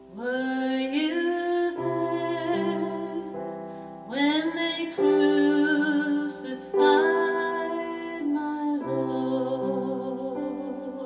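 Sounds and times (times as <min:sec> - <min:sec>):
piano accompaniment: 0:00.0 - 0:11.0
woman singing: 0:00.0 - 0:11.0.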